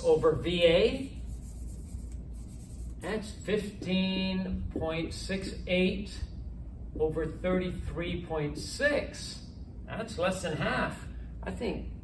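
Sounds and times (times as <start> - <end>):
eraser rubbing whiteboard: 0.2 - 3.8.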